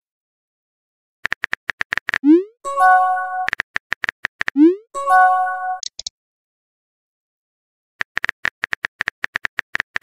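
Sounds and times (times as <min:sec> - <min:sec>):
quick run of clicks: 0:01.2 - 0:02.2, 0:03.5 - 0:04.6, 0:08.0 - 0:10.0.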